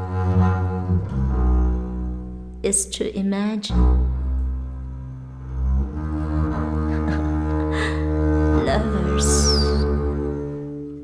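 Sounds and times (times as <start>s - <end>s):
double bass bowed note: 0.0s - 11.0s.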